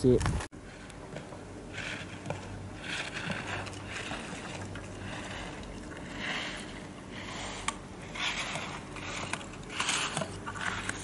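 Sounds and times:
skis carving on packed snow: 0.7s - 11.0s.

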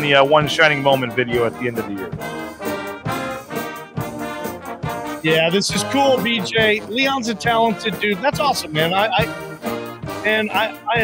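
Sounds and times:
brass band playing a fight song: 0.0s - 11.0s
drum kit steady beat: 0.0s - 11.0s.

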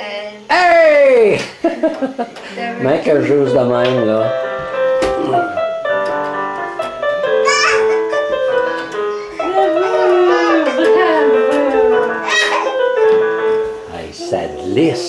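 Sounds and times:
electronic keyboard melody: 2.8s - 15.0s.

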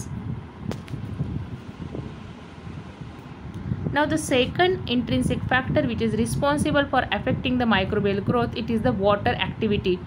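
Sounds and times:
low-pitched background noise: 0.0s - 10.0s.

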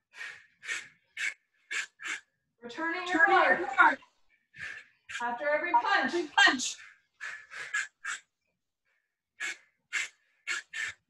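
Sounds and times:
person's sharp breaths out: 0.1s - 2.3s, 6.8s - 8.3s, 9.4s - 11.0s.

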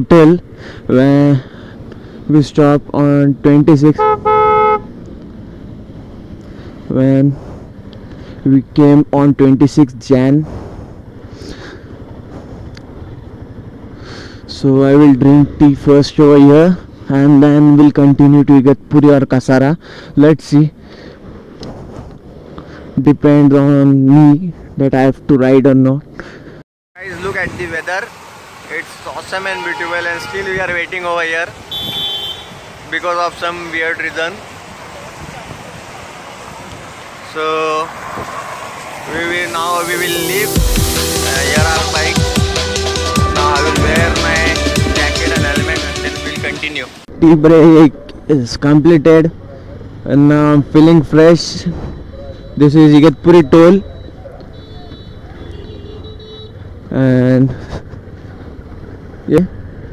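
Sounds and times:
motorcycle engine rumbling: 10.6s - 17.1s
man saying a word: 43.2s - 47.0s.

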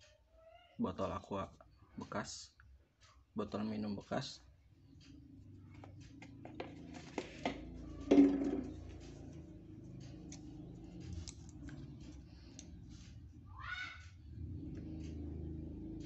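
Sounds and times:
steady low hum: 1.5s - 16.0s.

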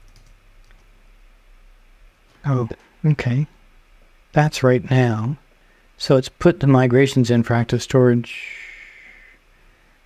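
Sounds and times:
computer keyboard clicks: 0.0s - 0.8s.

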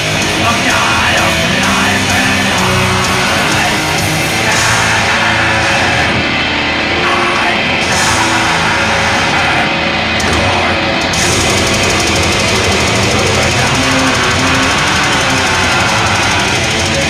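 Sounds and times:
bass guitar: 0.0s - 17.0s
distorted guitars: 0.0s - 17.0s
drums: 0.0s - 17.0s.

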